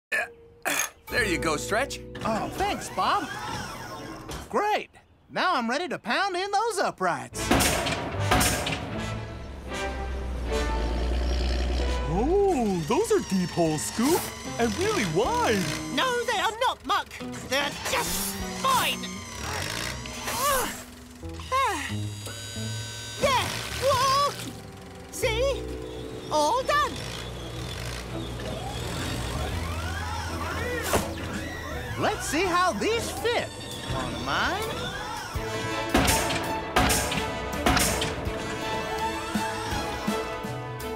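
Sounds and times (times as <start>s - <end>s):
background music: 0.1s - 4.5s, 7.3s - 40.9s
pile driver striking post: 7.4s - 9.0s, 35.9s - 38.3s
low machine hum: 10.4s - 35.4s
swooping whistle-like tones: 26.2s - 35.4s.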